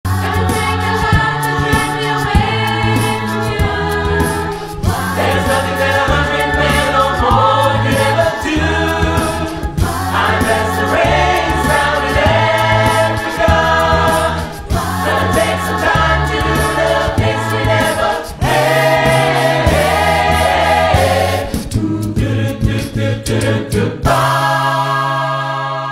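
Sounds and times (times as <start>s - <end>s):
choir singing in harmony: 0.1s - 25.9s.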